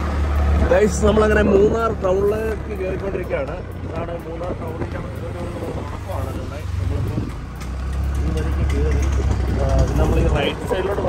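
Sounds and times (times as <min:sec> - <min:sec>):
vehicle engine rumble: 0:00.0 - 0:11.0
people talking: 0:00.6 - 0:07.4, 0:08.2 - 0:11.0.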